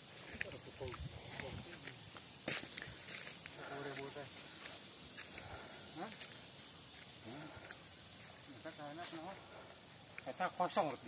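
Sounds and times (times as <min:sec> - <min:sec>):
footsteps on a dirt path: 0:00.0 - 0:11.0.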